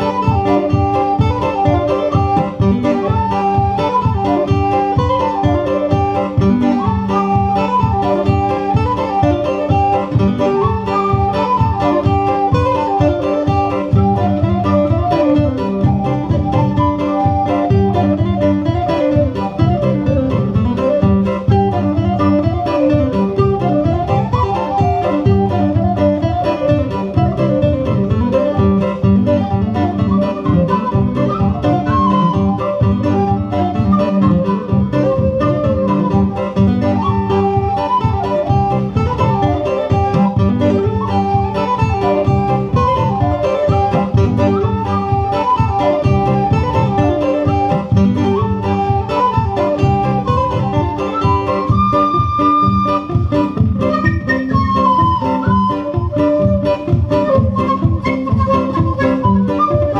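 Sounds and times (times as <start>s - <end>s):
acoustic guitar strumming: 0.0s - 59.9s
whistle playing reel melody: 0.0s - 59.9s.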